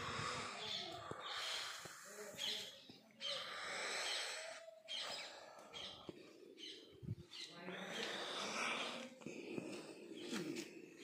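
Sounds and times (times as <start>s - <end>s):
birds chirping and calling: 0.1s - 9.0s.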